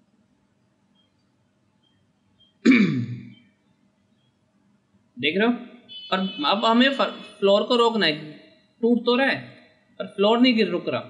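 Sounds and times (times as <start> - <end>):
man clearing throat: 2.7 - 3.3.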